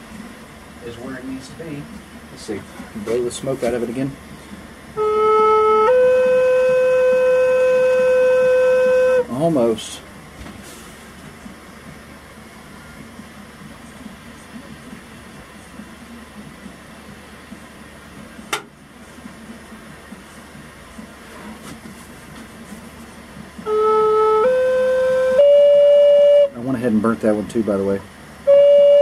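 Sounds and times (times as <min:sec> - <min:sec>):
flute held notes: 0:05.0 - 0:09.4, 0:23.6 - 0:26.6, 0:28.4 - 0:29.0.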